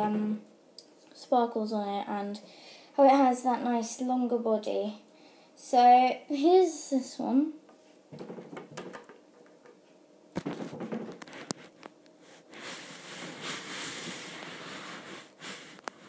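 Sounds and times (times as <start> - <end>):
plastic toy tapping on wooden table: 8.2 - 9.8
rustling near microphone: 10.4 - 16.0.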